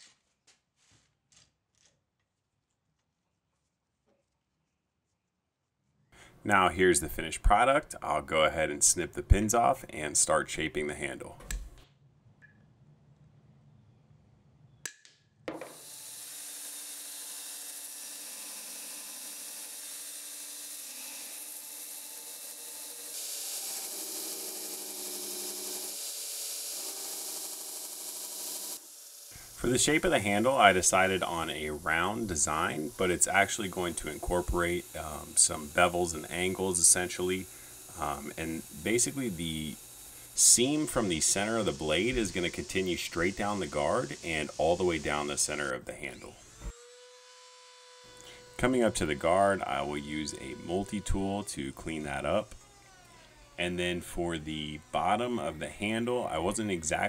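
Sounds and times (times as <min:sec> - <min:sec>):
belt grinder grinding: 0:15.7 - 0:57.0.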